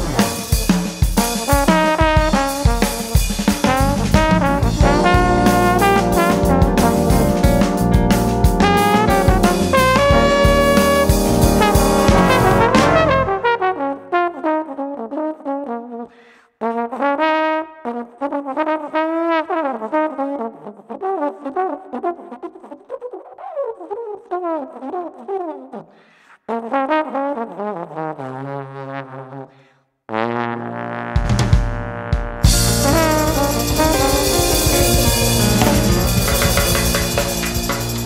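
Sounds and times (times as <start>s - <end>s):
jazz trombone ensemble with drums: 0.0s - 15.3s, 16.7s - 22.3s, 30.1s - 38.0s
solo trombone with sliding notes: 0.0s - 16.0s, 16.7s - 22.5s, 30.1s - 38.0s.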